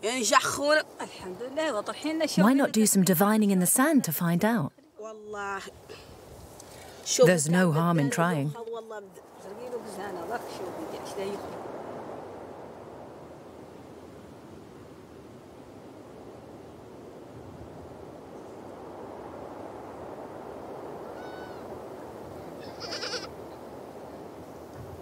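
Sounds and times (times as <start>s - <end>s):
outdoor background noise: 0.0s - 25.0s
animal call: 21.1s - 21.7s, 22.5s - 23.3s.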